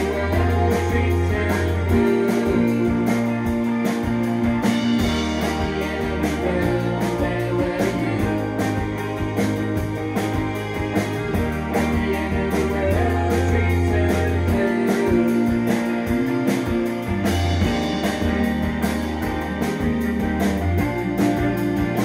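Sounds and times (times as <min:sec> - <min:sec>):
bass line: 0:00.0 - 0:22.0
electric guitars: 0:00.0 - 0:22.0
steady drum beat: 0:00.0 - 0:22.0.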